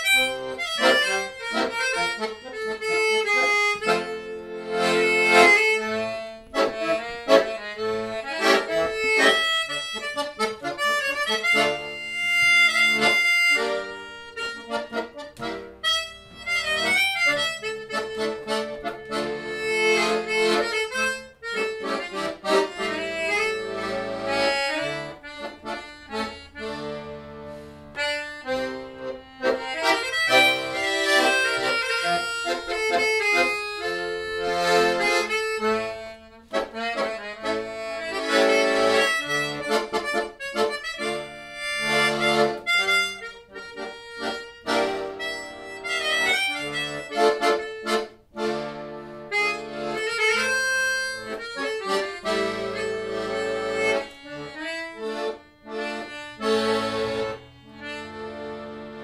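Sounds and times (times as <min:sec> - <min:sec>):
melodica: 0:00.0 - 0:59.0
piano accordion: 0:00.0 - 0:59.0.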